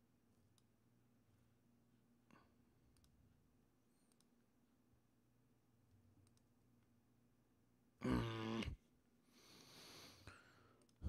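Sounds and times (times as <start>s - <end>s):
faint low hum: 0.0s - 11.0s
man humming: 8.0s - 8.8s.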